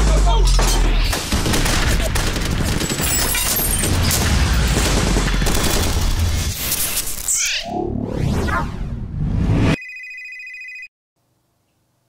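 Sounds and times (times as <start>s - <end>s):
electronic telephone ring: 9.8s - 10.9s.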